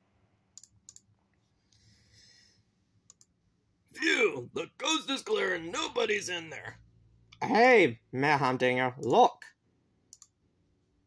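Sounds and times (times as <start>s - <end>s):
faint clicks: 3.1s - 3.4s, 10.1s - 10.4s.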